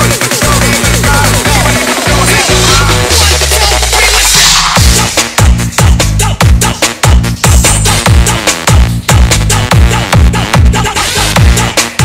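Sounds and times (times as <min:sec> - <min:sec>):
electronic dance music: 0:00.0 - 0:12.0
heavy pitch-dropping kick drum: 0:00.0 - 0:12.0.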